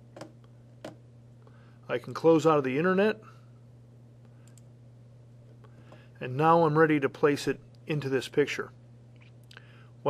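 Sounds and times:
steady low hum: 0.0s - 10.0s
faint computer mouse clicks: 4.4s - 4.7s.

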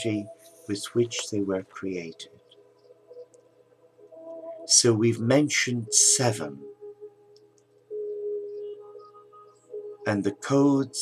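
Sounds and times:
soft ambient music: 0.0s - 11.0s.

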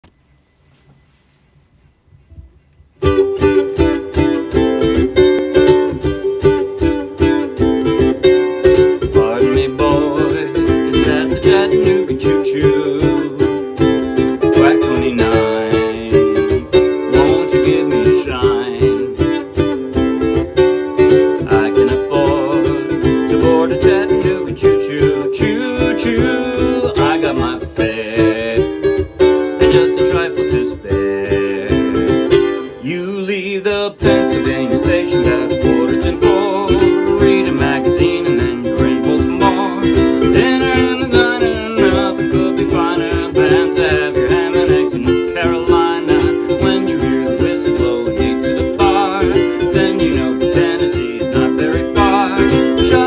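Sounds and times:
ukulele strumming: 2.4s - 53.0s
man singing: 4.2s - 53.0s.

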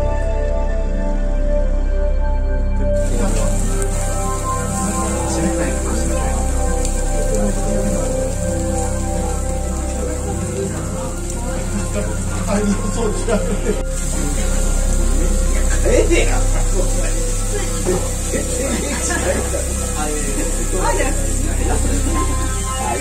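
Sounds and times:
synthesizer background music: 0.0s - 23.0s
indistinct voices: 3.0s - 23.0s.

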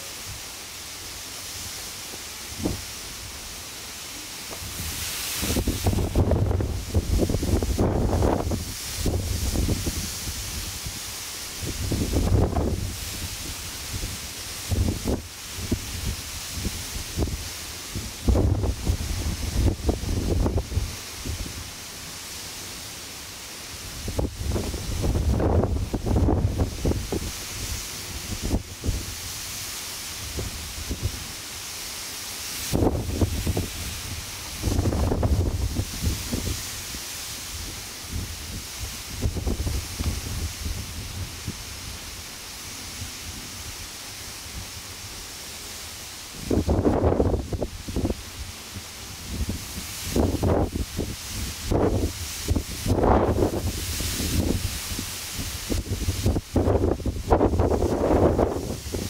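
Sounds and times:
steady high hiss: 0.0s - 59.0s
wind buffeting microphone: 4.5s - 21.6s, 24.0s - 29.4s, 32.7s - 37.0s, 37.6s - 41.7s, 46.4s - 48.3s, 49.2s - 59.0s.

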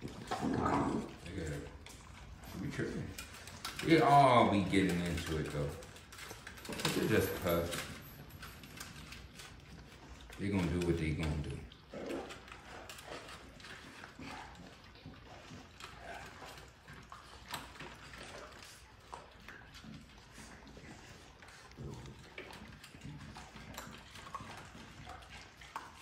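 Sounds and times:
puppies scuffling on concrete: 0.0s - 26.0s
puppy noises: 0.0s - 26.0s.

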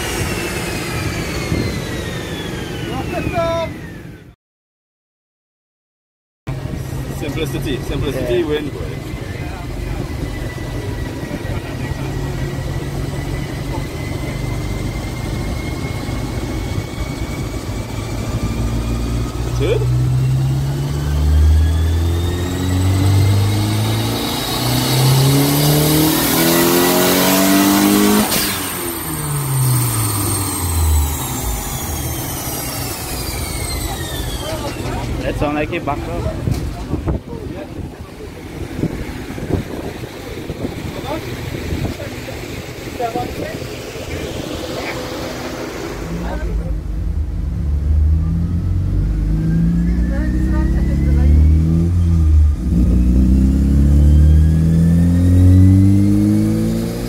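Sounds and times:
car engine revving on dyno: 0.0s - 3.6s, 6.5s - 37.4s, 38.2s - 57.0s
high whine: 6.5s - 57.0s.

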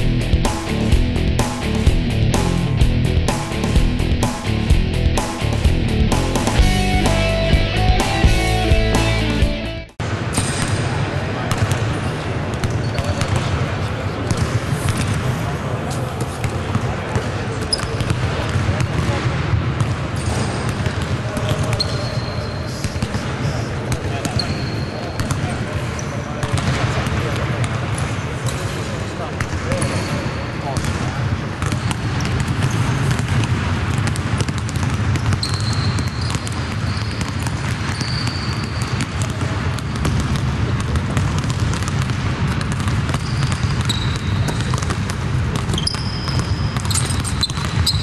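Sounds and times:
players' voices: 10.5s - 32.2s
sneaker squeaks: 12.1s - 13.5s, 17.6s - 18.2s, 19.8s - 26.6s, 29.7s - 30.8s, 31.6s - 33.3s, 34.5s - 40.2s, 42.8s - 48.0s
basketballs bouncing on hardwood: 31.6s - 48.0s.

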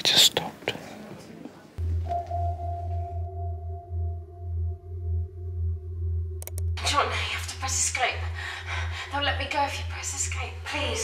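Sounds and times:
pulsing electronic drone: 1.8s - 11.0s
steady higher tones: 1.8s - 11.0s.

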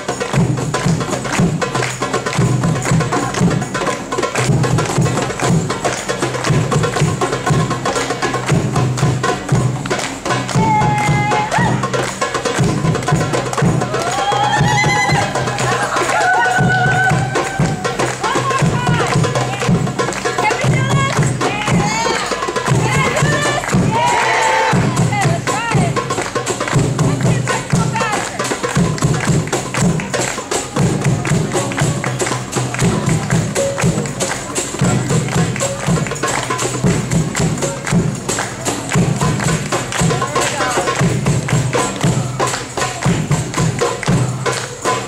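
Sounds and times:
hand drumming: 0.0s - 45.0s.

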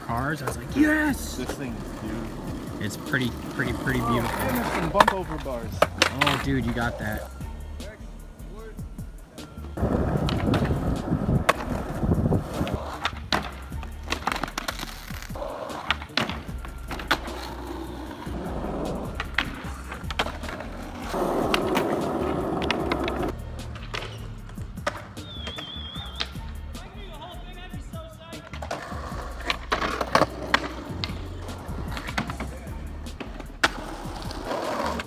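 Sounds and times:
skateboard clacking on ground: 0.0s - 7.3s, 9.4s - 26.5s, 28.4s - 35.0s
skateboard wheels rolling on asphalt: 0.0s - 7.5s, 8.2s - 35.0s.

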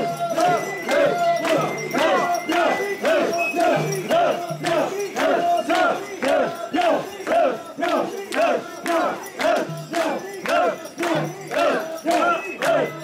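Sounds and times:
crowd shouting rhythmic chant: 0.0s - 13.0s.

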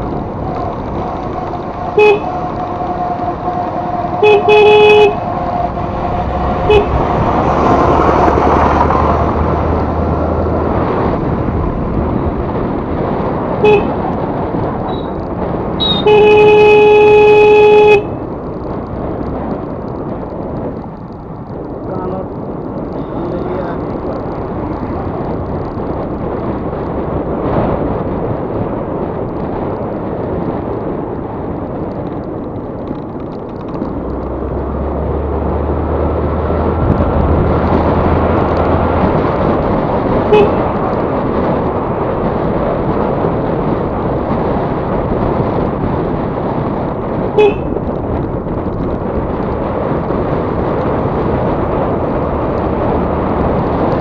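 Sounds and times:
wind and road noise: 0.0s - 54.0s
scooter horn beeping: 2.0s - 2.4s, 4.2s - 5.3s, 6.6s - 7.0s, 13.6s - 14.0s, 15.8s - 18.2s, 40.3s - 40.8s, 47.4s - 47.8s.

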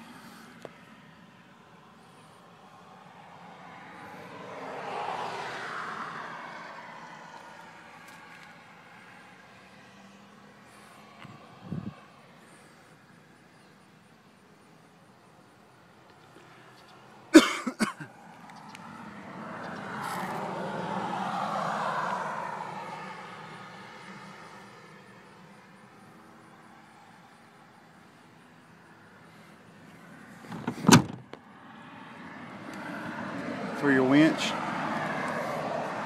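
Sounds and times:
vehicle passing outside: 0.0s - 13.3s, 18.1s - 36.0s
knocks inside vehicle cab: 30.6s - 31.3s.

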